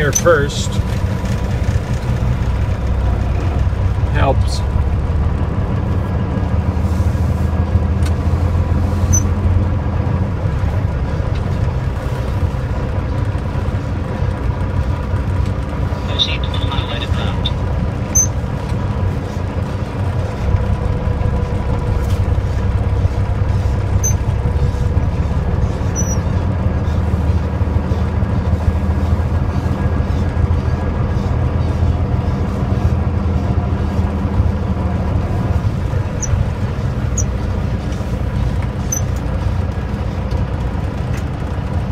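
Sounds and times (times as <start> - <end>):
diesel truck engine droning: 0.0 - 41.9.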